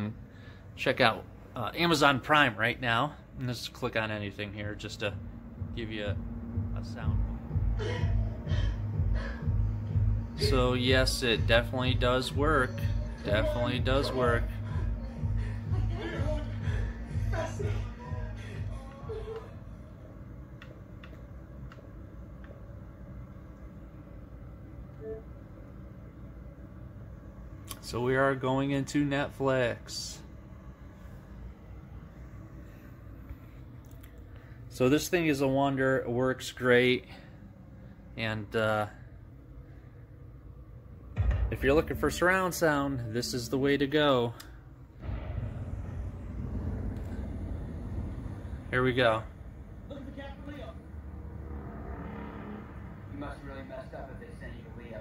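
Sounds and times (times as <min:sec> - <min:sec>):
low steady hum: 0:00.0 - 0:55.0
movie soundtrack rumble: 0:00.0 - 0:55.0.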